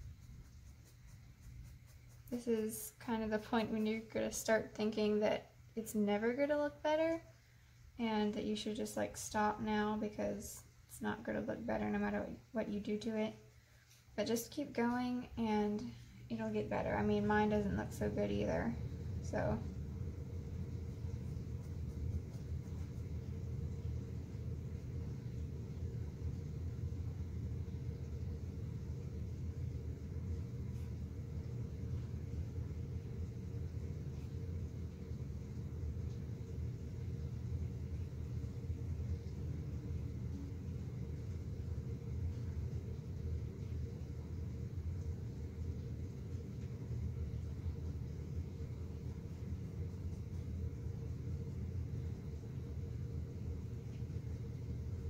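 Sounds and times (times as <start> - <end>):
low background rumble: 0.0 - 55.0.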